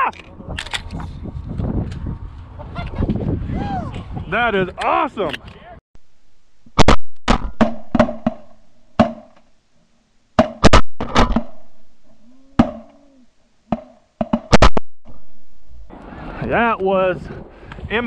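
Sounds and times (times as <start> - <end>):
shotgun blasts: 10.4 - 11.7.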